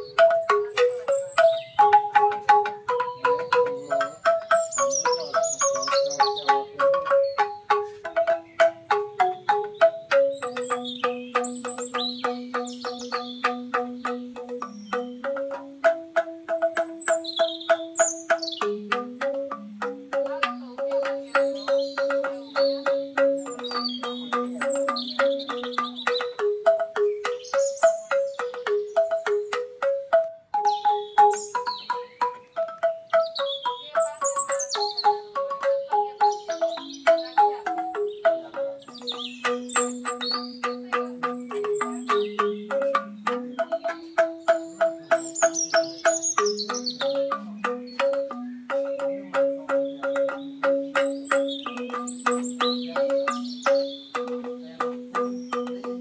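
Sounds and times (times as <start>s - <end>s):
bamboo xylophone music: 0.0s - 56.0s
birds chirping: 0.0s - 56.0s.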